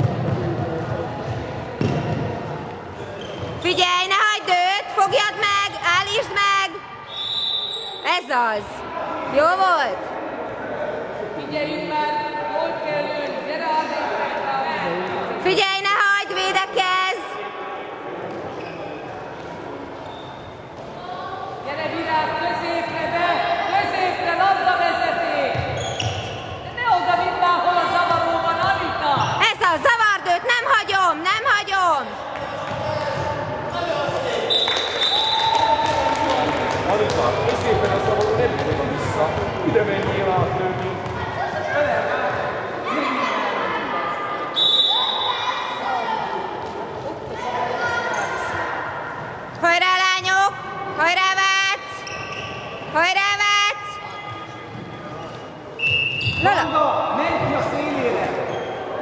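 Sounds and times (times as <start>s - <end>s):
referee whistle blasts: 7.1s - 8.1s, 34.5s - 35.6s, 44.5s - 45.4s, 55.8s - 56.8s
people shouting in a hall: 32.1s - 36.5s, 42.8s - 49.5s.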